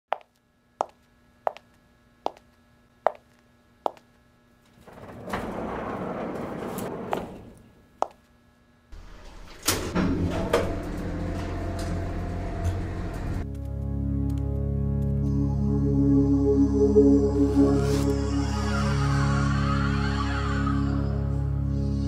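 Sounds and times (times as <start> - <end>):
elevator motor humming: 4.7 - 8.0, 9.0 - 13.5
elevator door sliding: 4.8 - 7.8, 9.0 - 13.4
ambient synth music: 10.2 - 22.0.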